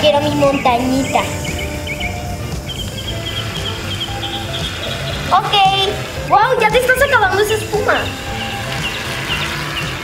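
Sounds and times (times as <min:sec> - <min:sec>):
background music with bass line: 0:00.0 - 0:10.0.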